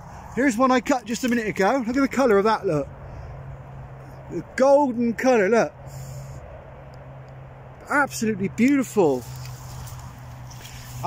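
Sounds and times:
man talking: 0.3s - 2.9s, 4.2s - 5.8s, 7.8s - 9.3s.

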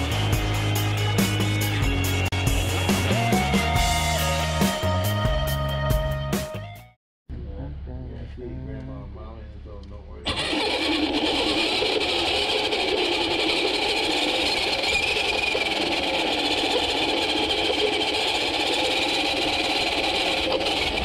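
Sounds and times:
toy car motor and gears whining: 10.3s - 21.0s.

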